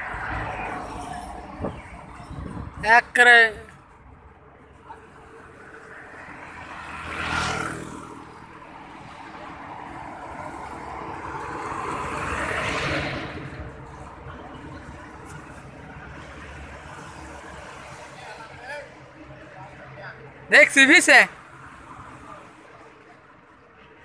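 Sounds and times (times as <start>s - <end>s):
road vehicles passing: 0.0s - 24.0s
steady traffic noise: 0.0s - 24.0s.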